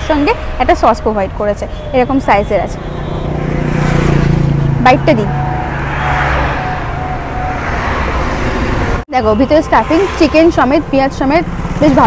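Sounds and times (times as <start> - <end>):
motor vehicle passing close by: 2.8 - 9.0.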